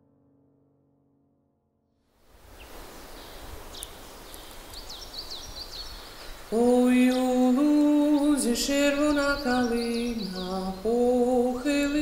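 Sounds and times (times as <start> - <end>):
birds chirping: 2.5 - 12.0.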